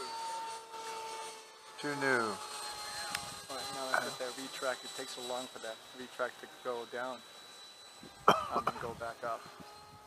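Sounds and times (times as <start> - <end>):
model jet fan whine: 0.0 - 10.0.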